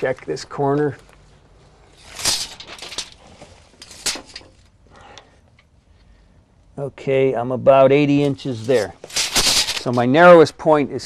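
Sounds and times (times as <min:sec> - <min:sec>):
tape measure blade rattling scrapes: 0:01.9 - 0:04.6, 0:08.2 - 0:10.1.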